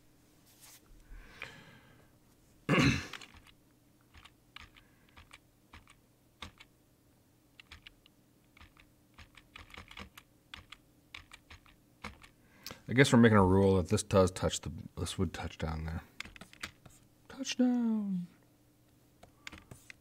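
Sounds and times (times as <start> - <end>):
keyboard keys clicking: 3.1 - 6.7, 7.6 - 12.4.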